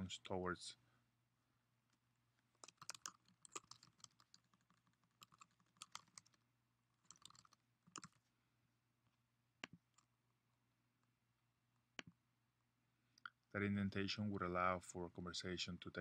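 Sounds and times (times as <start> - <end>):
faint keyboard typing: 2.4 - 8.3.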